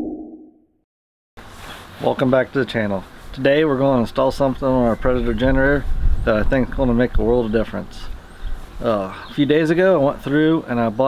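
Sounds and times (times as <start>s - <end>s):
faint outdoor background noise: 1.4s - 11.0s.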